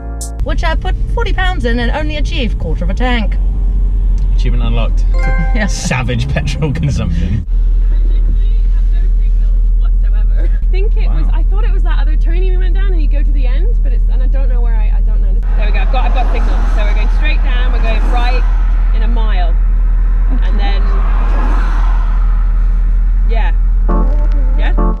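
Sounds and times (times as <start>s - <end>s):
people talking: 0.4s - 3.4s, 4.2s - 19.6s, 20.3s - 21.6s, 23.3s - 25.0s
road and engine drone in car cabin: 0.4s - 25.0s.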